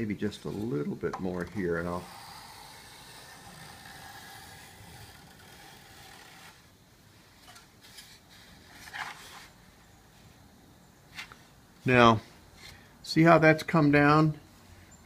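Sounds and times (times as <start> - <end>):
hand plane scraping wood: 1.8 - 6.6.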